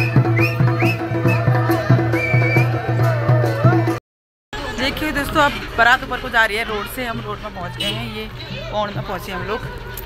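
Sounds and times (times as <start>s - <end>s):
steady low drum beat: 0.0s - 4.0s.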